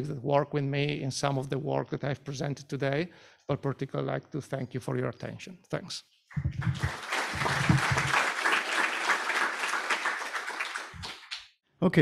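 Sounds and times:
audience applauding: 6.6s - 11.4s.

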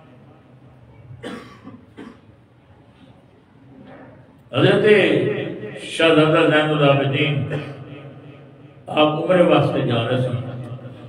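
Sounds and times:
man coughing: 1.2s - 2.3s, 7.4s - 7.9s.

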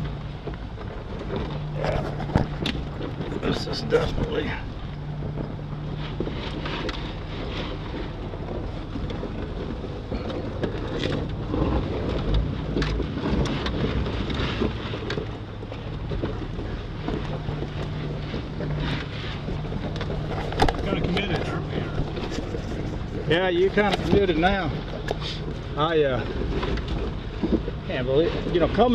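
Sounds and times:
vehicle body knocks and rattles: 0.0s - 7.1s, 8.2s - 28.9s
car engine running slowly: 0.0s - 28.9s.

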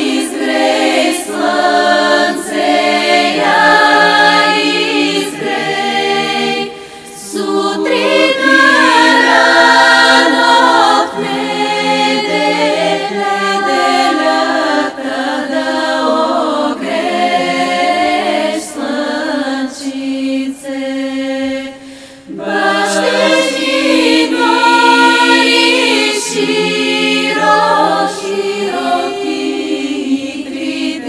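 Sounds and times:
women's choir singing a cappella: 0.0s - 31.0s.

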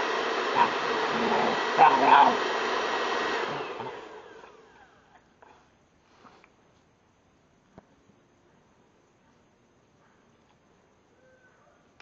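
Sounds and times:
hair dryer spinning down: 0.0s - 5.1s.

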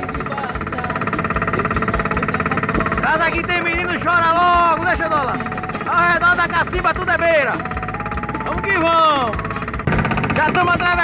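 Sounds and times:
boat motor running: 0.0s - 11.0s.

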